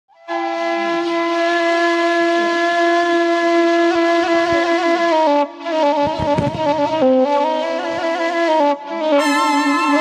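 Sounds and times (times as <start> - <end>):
bamboo flute long note: 0.1 - 10.0.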